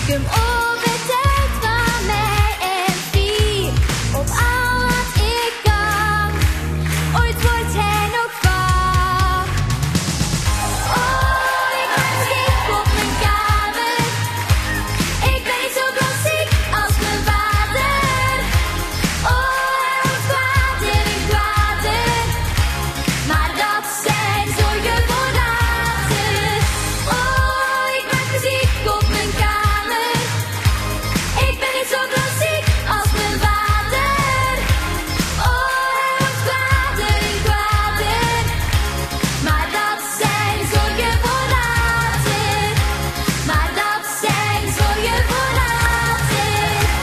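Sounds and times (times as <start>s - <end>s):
girl singing: 0.0s - 6.4s, 7.2s - 9.5s, 10.9s - 14.5s, 15.2s - 18.6s, 19.2s - 22.5s, 23.3s - 30.4s, 31.4s - 34.7s, 35.4s - 38.6s, 39.4s - 42.8s, 43.5s - 47.0s
band with steady drum beat: 0.0s - 7.8s, 8.4s - 47.0s
person singing: 10.8s - 18.6s.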